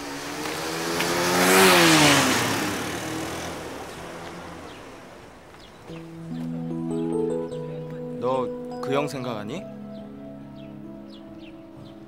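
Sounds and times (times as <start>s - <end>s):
motorcycle passing by: 0.0s - 7.0s.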